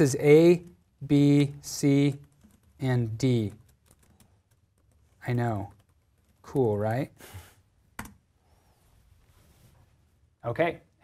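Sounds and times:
typing on computer keyboard: 1.9 - 6.7.

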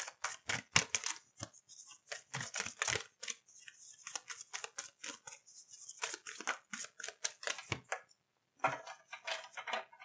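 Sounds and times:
cards being shuffled: 0.0 - 8.0.

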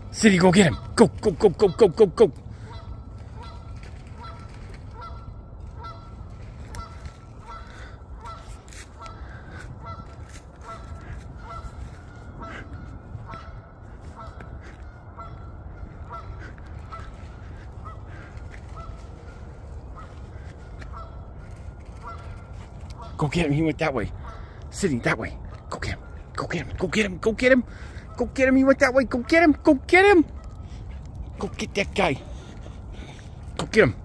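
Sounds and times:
goose-like honking calls: 0.0 - 34.0.

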